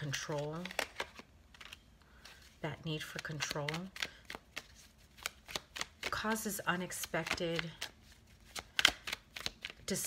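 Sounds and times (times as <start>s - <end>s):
cards tapping and snapping: 0.5s - 1.8s, 3.2s - 9.9s.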